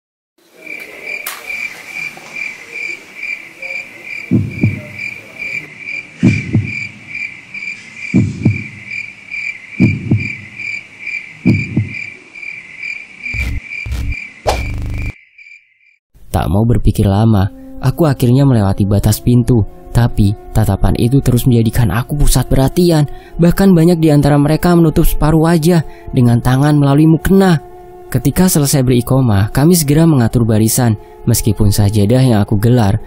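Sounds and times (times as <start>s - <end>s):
crickets chirping: 0.4s - 16.0s
deep double thuds: 4.3s - 5.1s, 6.2s - 7.0s, 8.1s - 9.0s, 9.8s - 10.7s, 11.4s - 12.1s, 13.4s - 15.2s
heavy low hits: 13.4s - 15.2s.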